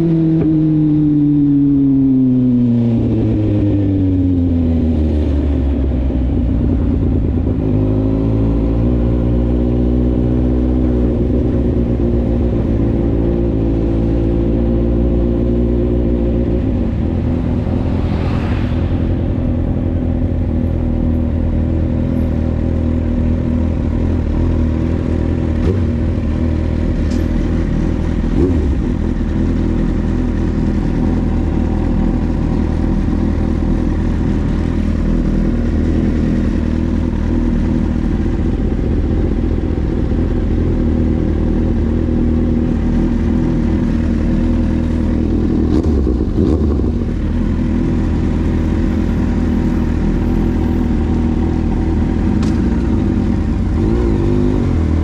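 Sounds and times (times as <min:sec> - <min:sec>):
motorcycle engine running: 0:19.1 - 0:55.0.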